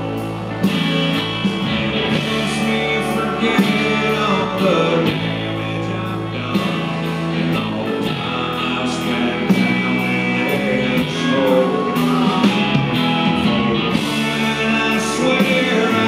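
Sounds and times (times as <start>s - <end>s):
electric guitar: 0.0s - 16.0s
steady drum beat: 0.0s - 16.0s
man singing: 2.1s - 16.0s.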